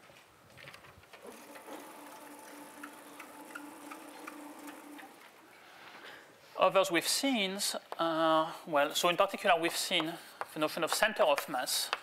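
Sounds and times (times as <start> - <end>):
motor humming: 1.2 - 5.4.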